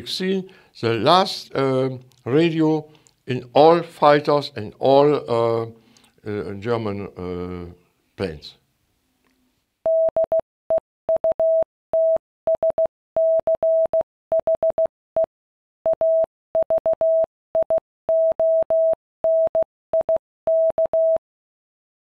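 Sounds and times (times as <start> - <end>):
morse code beeps: 9.9 - 10.4, 11.2 - 14.9, 15.9 - 21.2.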